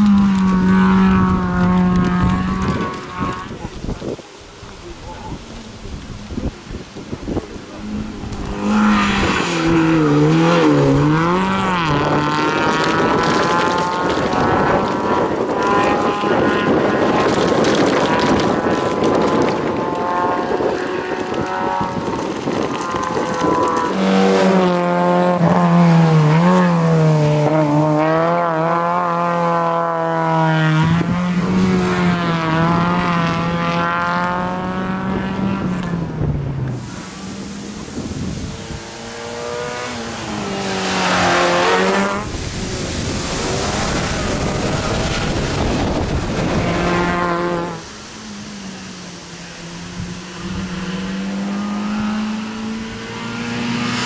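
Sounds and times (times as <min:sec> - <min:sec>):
car engine revving hard: 0:07.6 - 0:54.0.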